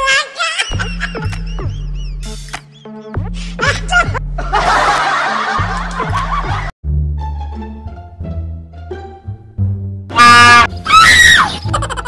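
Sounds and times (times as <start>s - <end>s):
background music with bass line: 0.7s - 12.0s
crowd laughing: 4.4s - 6.7s, 11.6s - 12.0s.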